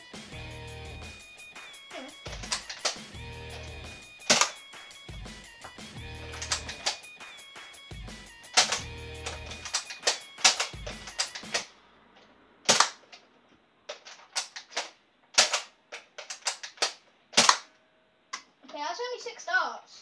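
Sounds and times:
background music: 0.0s - 12.2s
darts hitting wall: 2.0s - 5.0s, 5.6s - 7.0s, 8.5s - 11.7s
toy blaster clicks and snaps: 2.2s - 3.1s, 4.2s - 4.6s, 6.3s - 7.0s, 8.5s - 11.7s, 12.7s - 13.0s, 13.9s - 17.7s.

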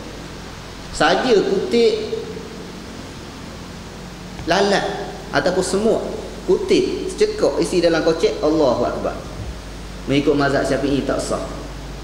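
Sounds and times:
room noise hiss: 0.0s - 12.0s
man speaking: 1.0s - 2.3s, 4.4s - 9.3s, 10.1s - 11.6s.

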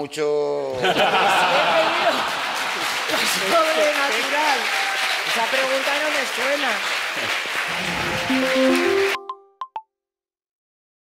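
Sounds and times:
laughter: 0.7s - 2.6s
show music: 7.5s - 9.8s
pop-like sound logo notes: 7.7s - 9.8s.

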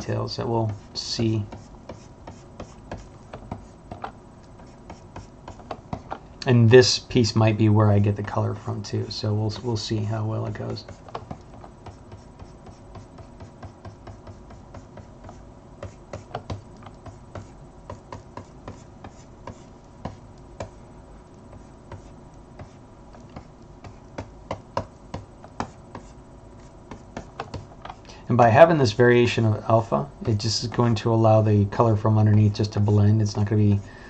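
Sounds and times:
faint electrical hum: 0.0s - 34.0s.

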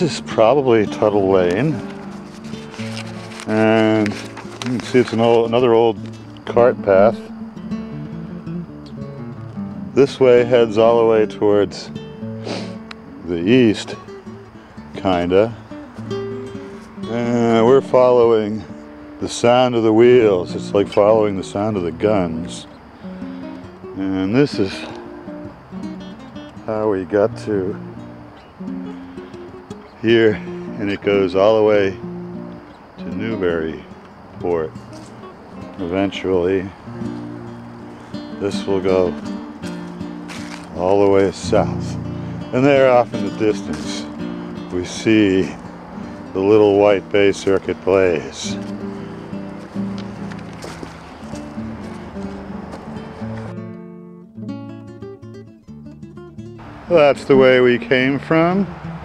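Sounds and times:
plucked acoustic stringed instrument: 0.0s - 13.2s, 36.8s - 57.5s
rustling outdoor noise with clicks: 0.1s - 7.4s, 12.7s - 27.3s, 27.9s - 53.8s.

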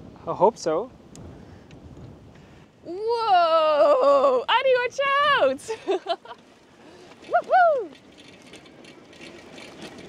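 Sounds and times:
bicycle ticking and clicking: 7.9s - 10.0s.

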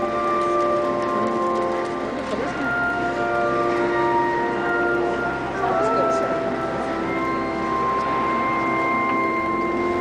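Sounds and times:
pipe organ playing loud chords: 0.0s - 10.0s.

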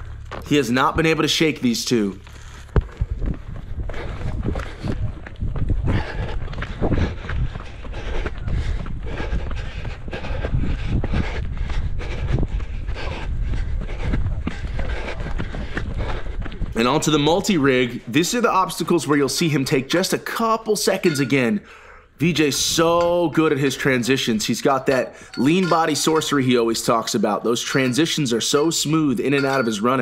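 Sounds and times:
low rumble: 0.0s - 17.1s
running footsteps on dirt: 0.0s - 20.6s, 22.5s - 30.0s.

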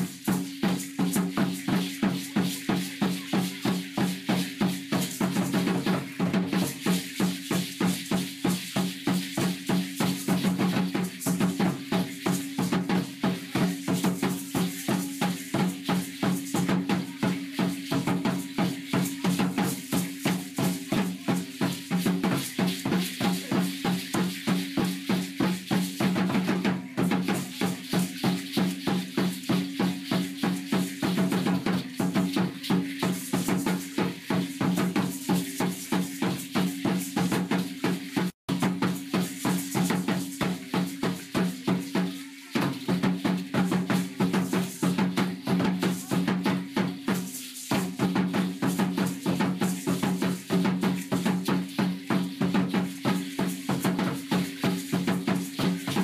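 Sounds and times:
drum beating fast rhythm: 0.0s - 56.0s
rattles shaking: 0.0s - 56.0s.

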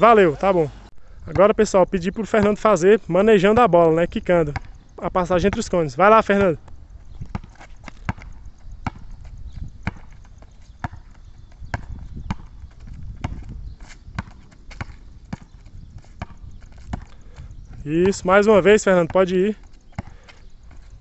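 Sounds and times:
basketball bouncing: 2.3s - 2.7s, 4.4s - 20.8s.

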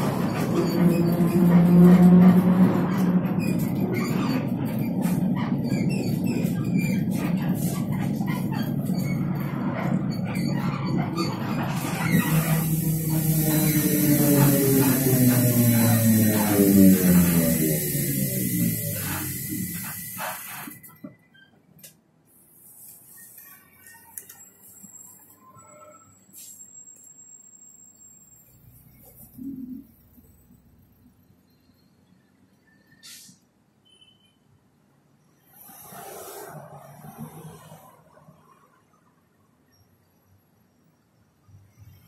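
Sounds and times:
high hiss: 12.1s - 20.7s
electric motor whine: 12.3s - 20.0s.

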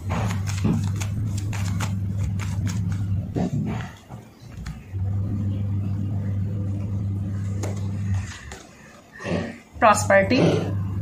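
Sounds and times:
cards being shuffled: 0.0s - 3.5s
low motor hum: 0.0s - 11.0s.

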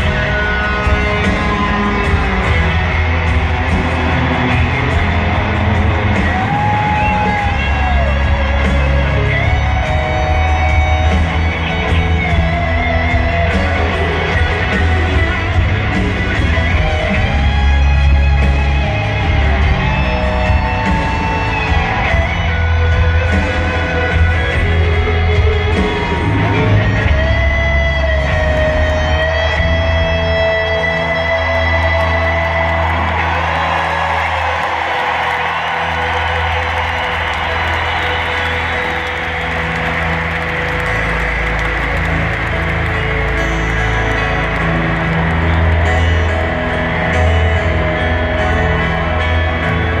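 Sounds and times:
crowd noise: 0.0s - 50.0s
lead electric guitar long notes: 0.0s - 50.0s
rock band playing: 0.0s - 50.0s.

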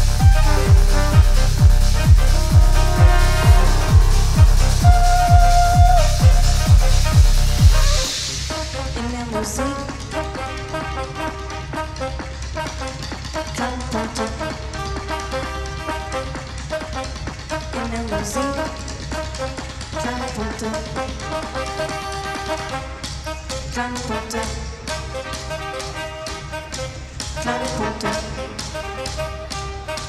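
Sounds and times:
techno kick drum thumping: 0.0s - 8.8s
steady low bass: 0.0s - 9.0s
brass section playing chords: 0.0s - 17.9s, 24.1s - 30.0s.

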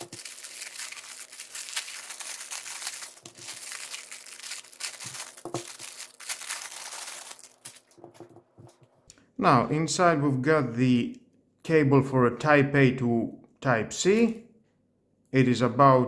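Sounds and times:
plastic bags crinkling: 0.0s - 8.1s.

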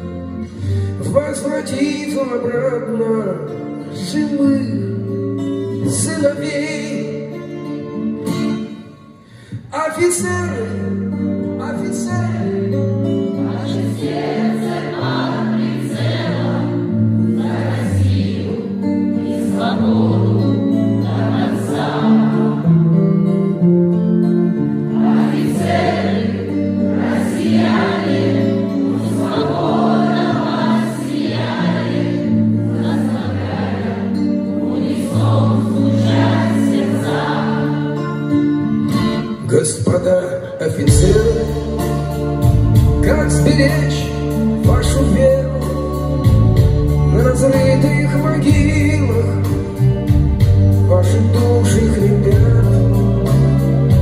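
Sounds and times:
guitar chords ringing: 0.0s - 54.0s
live band music: 0.0s - 54.0s
choir-like held chords: 12.5s - 39.3s.

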